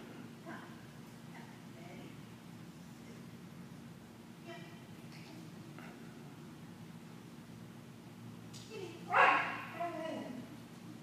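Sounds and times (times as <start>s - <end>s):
dog barking: 9.1s - 9.7s.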